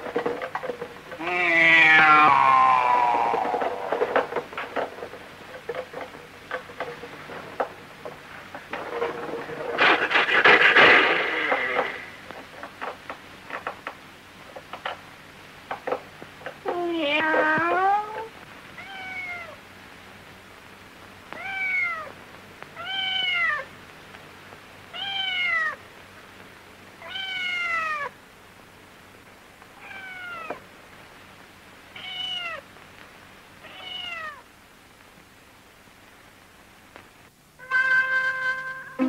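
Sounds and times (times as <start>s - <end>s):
kitten meowing: 1.2s - 3.6s, 18.8s - 19.6s, 22.8s - 23.6s, 25.0s - 25.8s, 27.0s - 28.1s, 29.8s - 30.6s, 33.6s - 34.4s.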